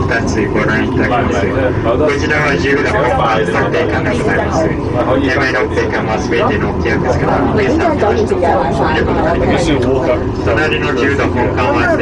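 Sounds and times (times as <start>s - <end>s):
cable car cabin rumble: 0.0s - 12.0s
people chattering: 0.0s - 12.0s.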